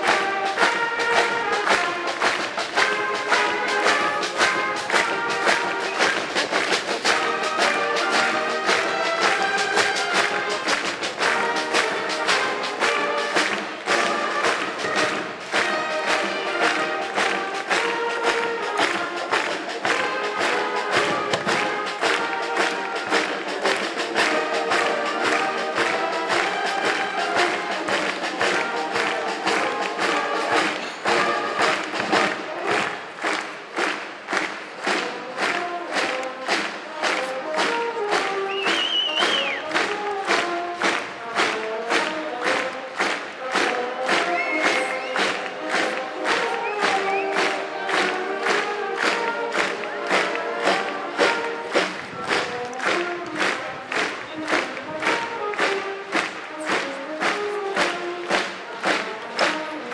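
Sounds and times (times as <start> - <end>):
brass band playing a march: 0.0 - 59.9
steady drum beat: 0.0 - 59.9.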